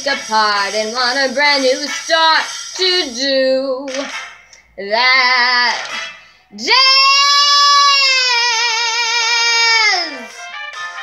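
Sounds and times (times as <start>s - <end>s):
girl singing a high note: 6.6s - 10.4s.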